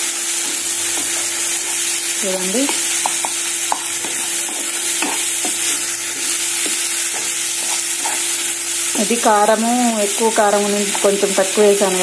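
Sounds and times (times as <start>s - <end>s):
onions and tomatoes sizzling: 0.0s - 12.0s
spatula scraping a pan: 0.3s - 9.3s.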